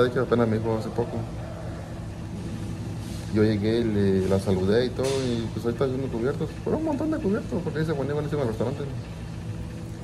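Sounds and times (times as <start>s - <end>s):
steady background rumble: 0.0s - 10.0s.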